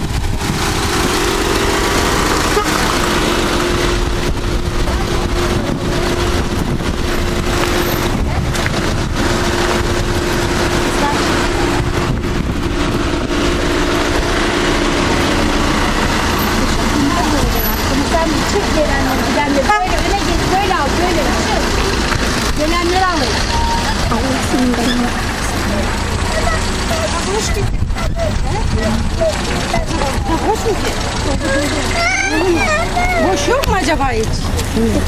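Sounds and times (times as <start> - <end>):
outdoor crowd voices: 0.0 - 35.0
steady low rumble: 0.0 - 35.0.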